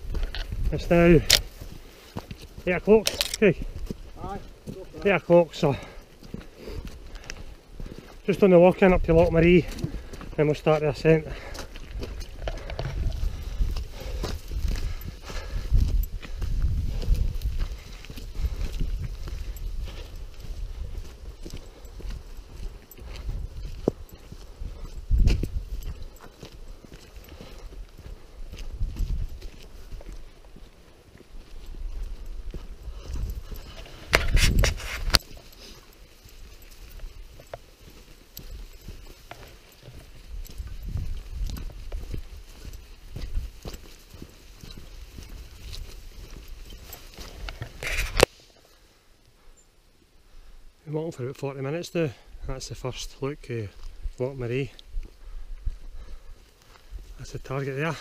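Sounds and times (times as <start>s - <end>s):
footsteps on stony path: 0.0s - 58.0s.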